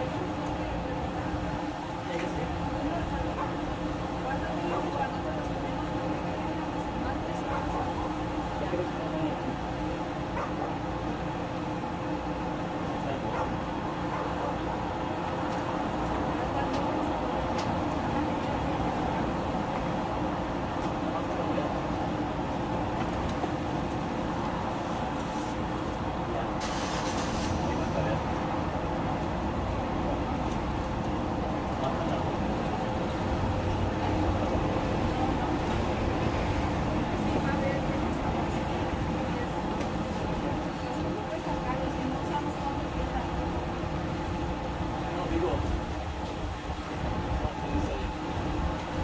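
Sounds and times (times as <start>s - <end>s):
faint voices: 0.0s - 49.0s
road traffic hum: 0.0s - 49.0s
brief hiss: 26.6s - 28.0s.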